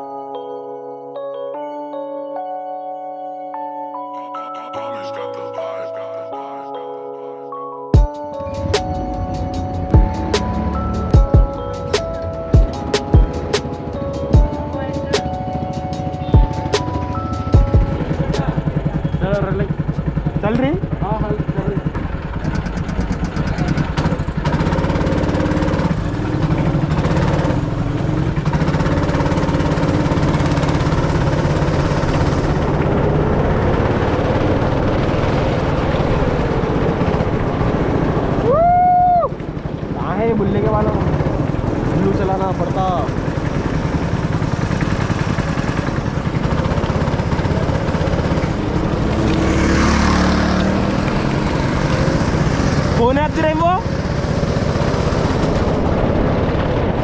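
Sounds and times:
background music with a beat: 0:07.9 - 0:20.8
go-kart engine buzzing: 0:08.4 - 0:38.6, 0:39.2 - 0:57.0
person shouting woo: 0:38.4 - 0:39.4.

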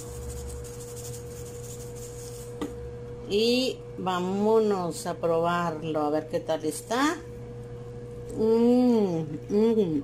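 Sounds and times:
salt shaker shaking: 0:00.0 - 0:02.6
background hum: 0:00.0 - 0:10.0.

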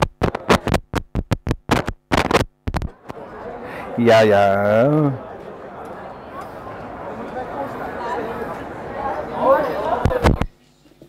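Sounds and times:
crackles and pops through loudspeakers: 0:00.0 - 0:03.2, 0:10.0 - 0:10.6.

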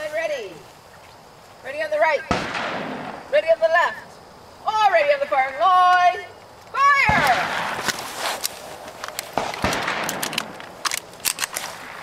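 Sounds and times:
rifle shot with echo: 0:02.3 - 0:03.2, 0:07.1 - 0:07.8, 0:09.4 - 0:10.6
person calling out: 0:04.7 - 0:07.4.

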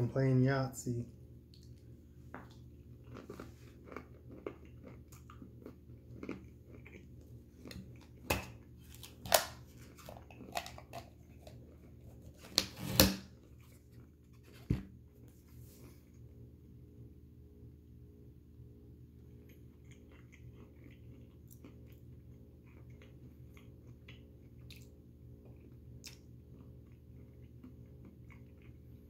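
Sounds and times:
person crunching peanuts: 0:02.9 - 0:12.0.

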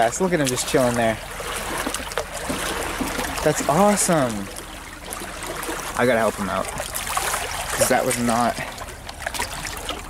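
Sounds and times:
water lapping among rocks: 0:00.0 - 0:10.0.

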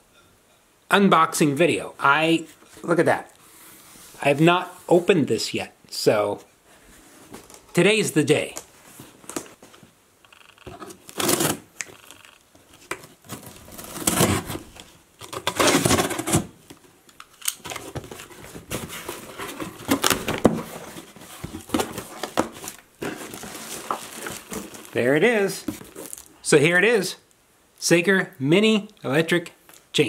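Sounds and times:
packing tape ripping: 0:10.9 - 0:12.2, 0:13.3 - 0:14.6
cardboard flaps rustling: 0:12.6 - 0:16.8, 0:17.6 - 0:26.3.

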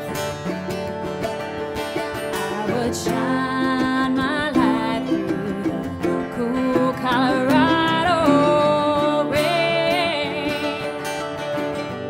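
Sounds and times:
acoustic guitars: 0:00.0 - 0:12.0
mandolin: 0:00.0 - 0:12.0
person singing wavering notes: 0:02.4 - 0:11.4.

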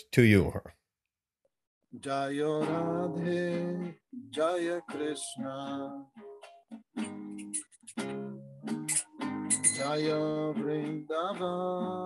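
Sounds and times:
strummed nylon-string guitar: 0:02.1 - 0:12.0.

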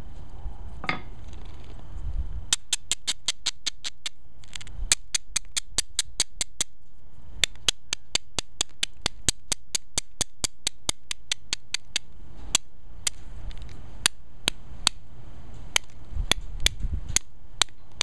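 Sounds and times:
stone grinding flint edge: 0:02.5 - 0:06.8, 0:07.4 - 0:15.0, 0:15.7 - 0:18.0.

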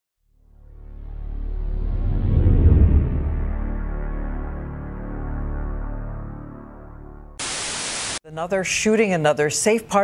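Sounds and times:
intro music low tones: 0:00.3 - 0:07.4.

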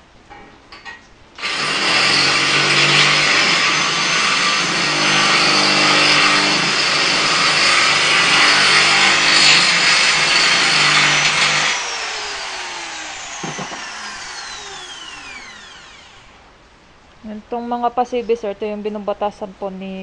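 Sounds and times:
angle grinder grinding steel: 0:01.4 - 0:16.4
grinder disc winding down: 0:01.4 - 0:16.4.

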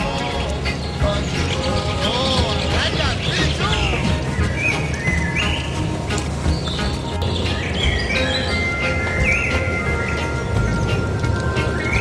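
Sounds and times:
background music with low beat: 0:00.0 - 0:12.0.

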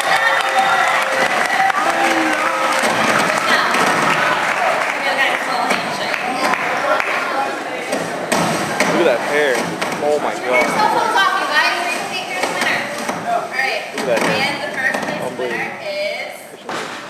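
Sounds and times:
many voices talking: 0:00.0 - 0:17.0
sharp knocks: 0:07.9 - 0:11.0, 0:11.9 - 0:15.4.

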